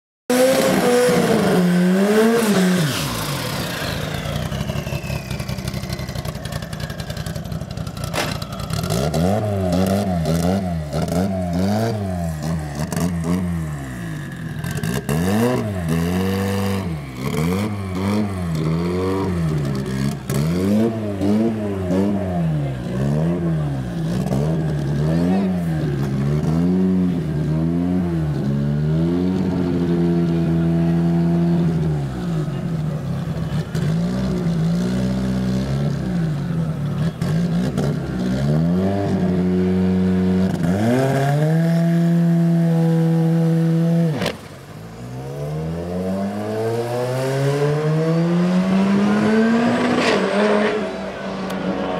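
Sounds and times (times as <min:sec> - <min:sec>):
car engine revving: 0:00.3 - 0:51.9.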